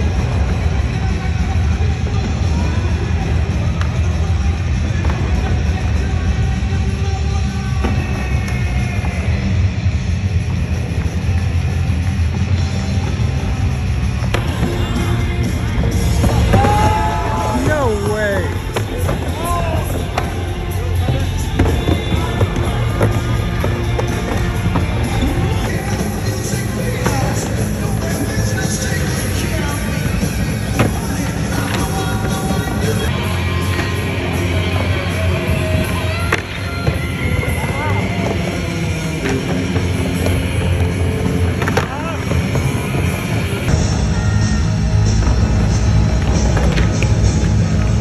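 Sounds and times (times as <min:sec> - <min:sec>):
skateboard wheels rolling: 0:00.0 - 0:44.4
background music: 0:00.0 - 0:48.0.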